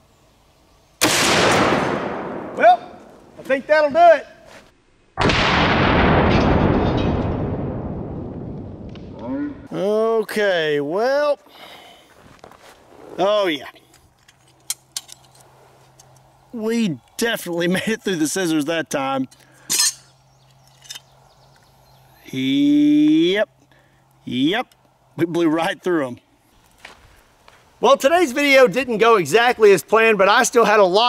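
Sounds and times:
booming rifle shot echoing: 1.0s - 2.6s, 5.2s - 9.2s.

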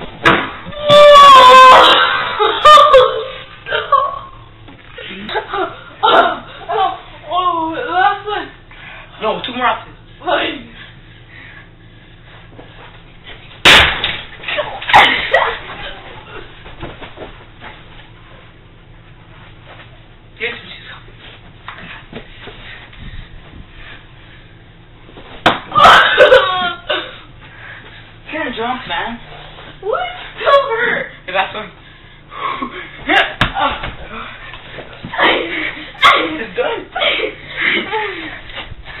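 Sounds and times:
low steady hum: 0.0s - 39.0s.

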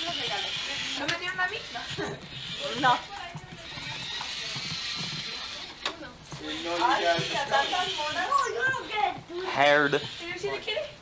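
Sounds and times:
people talking in a room: 0.0s - 11.0s.

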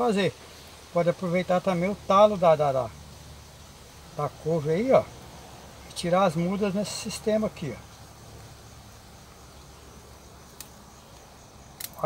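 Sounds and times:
insects chirring: 0.0s - 12.0s
scissors snipping a stalk: 10.5s - 10.8s, 11.8s - 12.0s.

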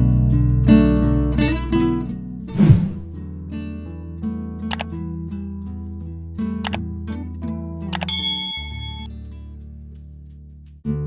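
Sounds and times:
bell ding: 8.0s - 9.1s.

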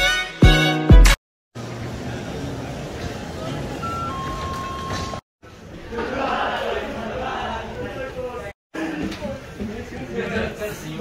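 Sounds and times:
traffic: 1.6s - 5.2s.

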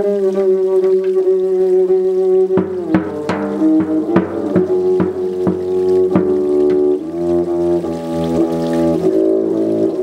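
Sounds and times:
bowed double bass: 0.0s - 10.0s
drum stroke: 2.6s - 7.9s.

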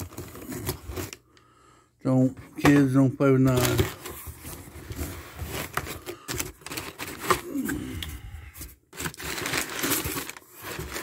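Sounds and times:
crumpled paper rustling: 0.0s - 1.2s, 2.7s - 7.6s, 8.6s - 11.0s
cardboard box being opened: 9.0s - 11.0s.

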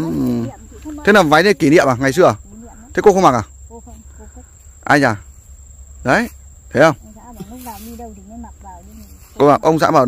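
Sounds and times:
person murmuring softly: 0.0s - 1.0s
people talking: 0.0s - 5.2s, 6.1s - 10.0s.

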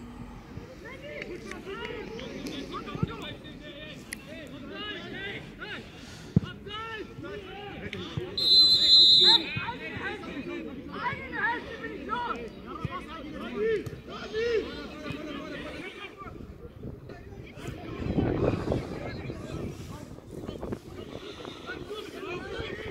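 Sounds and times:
shouts and chatter of crowd: 0.5s - 22.9s
referee's whistle blast: 8.4s - 9.6s.

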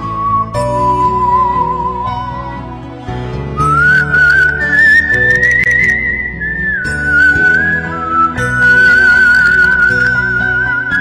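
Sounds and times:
soft instrumental backing track: 0.0s - 11.0s
whistled melody with vibrato: 0.0s - 11.0s.

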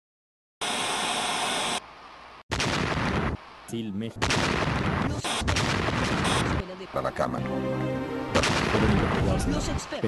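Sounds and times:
loud static hiss: 0.6s - 7.4s.

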